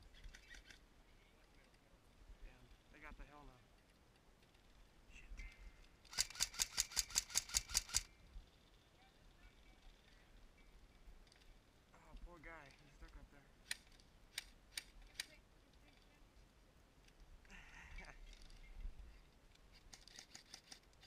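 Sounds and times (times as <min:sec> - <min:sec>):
airsoft rifle firing burst: 0:06.1 - 0:08.1.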